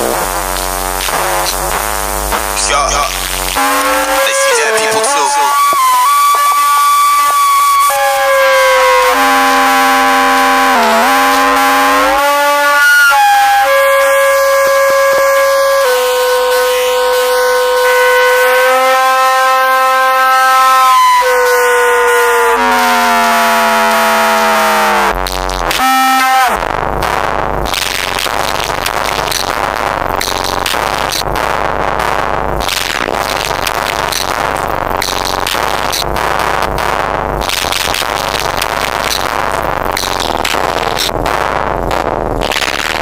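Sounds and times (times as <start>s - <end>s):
electronic synthesizer music: 0.0s - 43.0s.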